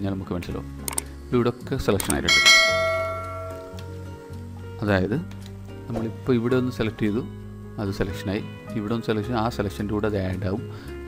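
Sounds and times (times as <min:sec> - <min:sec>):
bright bell ding: 0:02.3 - 0:03.9.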